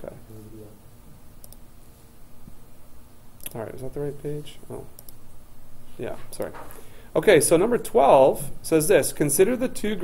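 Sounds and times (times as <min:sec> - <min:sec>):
computer mouse click: 0:01.4 - 0:01.6, 0:05.0 - 0:05.2.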